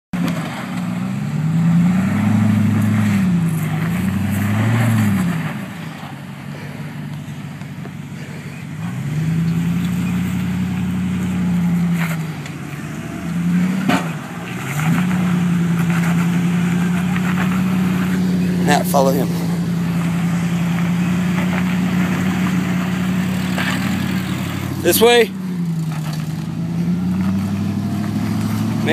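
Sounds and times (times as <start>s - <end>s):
engine revving under load: 0.2s - 28.9s.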